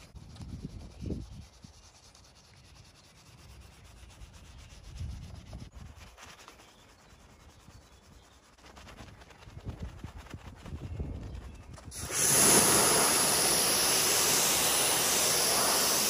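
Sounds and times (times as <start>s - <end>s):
brush scrubbing soapy foam: 0.5s - 10.8s, 12.0s - 16.0s.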